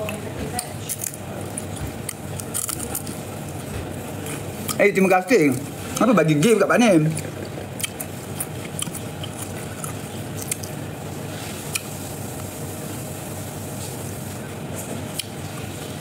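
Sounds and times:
crispy fish tearing and chewing: 0:00.8 - 0:03.6, 0:07.1 - 0:10.8.

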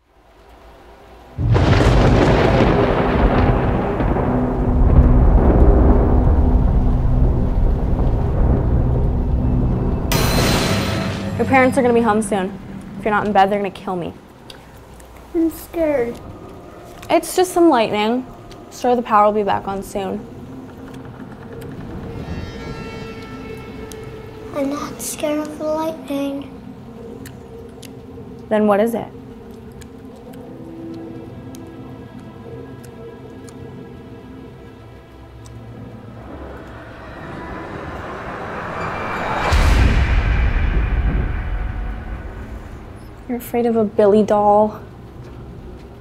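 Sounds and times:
rain: 0:00.0 - 0:10.2, 0:11.3 - 0:46.0
film score of sustained notes: 0:00.0 - 0:46.0
thunder rumbling: 0:00.3 - 0:32.3, 0:34.4 - 0:46.0
higher musical tones: 0:21.6 - 0:27.2, 0:34.8 - 0:43.5.

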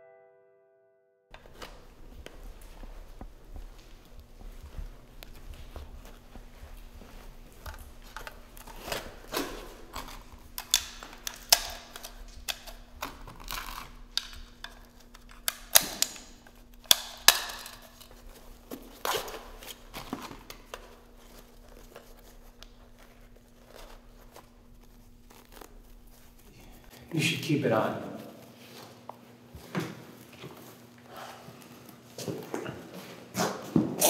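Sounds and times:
faint steady hum: 0:01.4 - 0:32.6
fabric straps rustling and tearing: 0:04.2 - 0:27.0.

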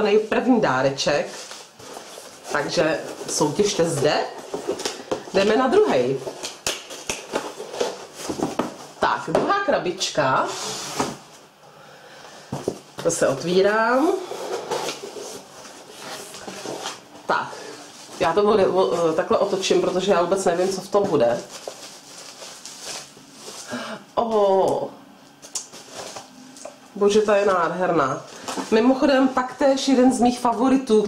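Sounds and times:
bubble wrap rustling: 0:01.0 - 0:09.1, 0:13.7 - 0:23.8.

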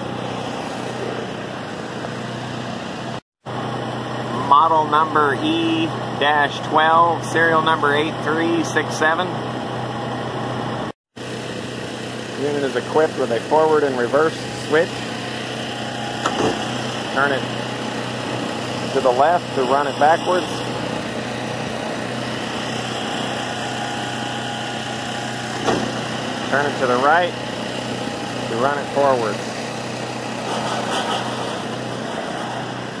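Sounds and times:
conveyor humming with belt noise: 0:00.0 - 0:10.1, 0:10.7 - 0:33.0.

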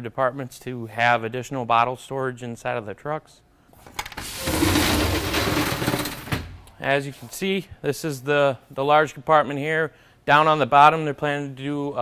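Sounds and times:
roll-up door rattling open: 0:04.0 - 0:06.6.

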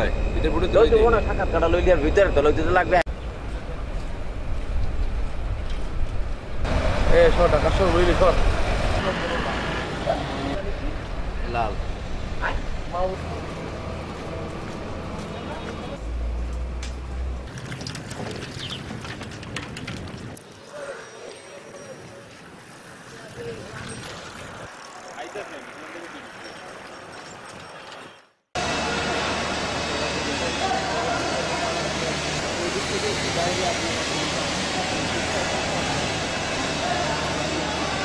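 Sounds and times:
turbine machinery drone: 0:00.0 - 0:03.0, 0:28.6 - 0:38.0
bicycles rolling on road: 0:00.0 - 0:38.0
steady outdoor background noise: 0:00.0 - 0:38.0
people's voices: 0:07.1 - 0:11.8, 0:28.6 - 0:38.0.

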